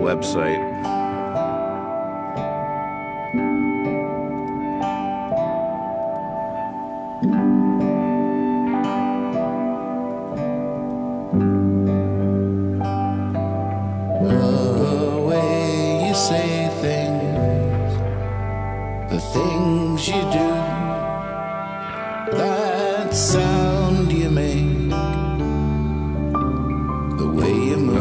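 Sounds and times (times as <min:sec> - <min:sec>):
held music chords: 0:00.0 - 0:28.0.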